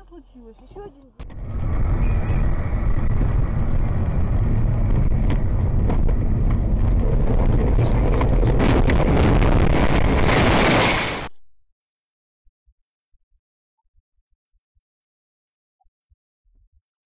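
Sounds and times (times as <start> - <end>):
car road and engine rumble: 0.6 - 11.3
rushing noise: 1.2 - 11.3.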